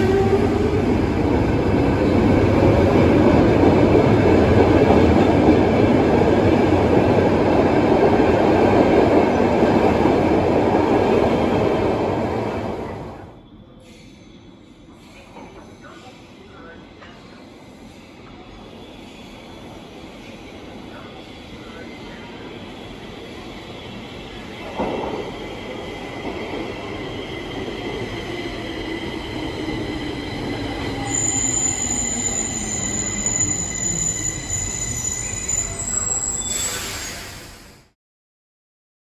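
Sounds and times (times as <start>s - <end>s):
metro train braking: 0.0s - 38.0s
high brake squeal: 30.8s - 37.9s.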